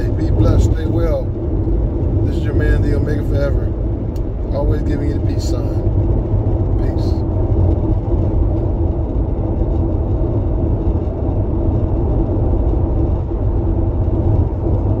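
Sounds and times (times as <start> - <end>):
road and engine rumble: 0.0 - 15.0.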